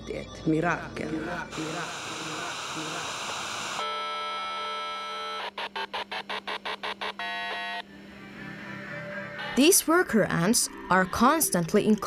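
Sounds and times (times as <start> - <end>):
electronic beeping: 0.4 - 7.8
tv static hiss: 1.2 - 7.8.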